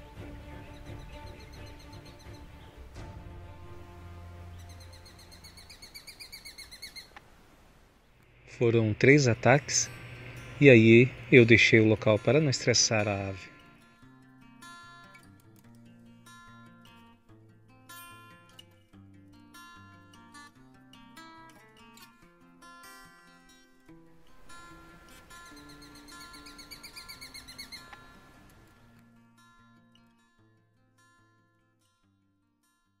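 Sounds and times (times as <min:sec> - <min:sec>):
acoustic guitar music: 0:00.0 - 0:05.9, 0:08.4 - 0:33.0
high repeated bird calls: 0:00.2 - 0:02.9, 0:04.4 - 0:07.2, 0:25.2 - 0:28.4.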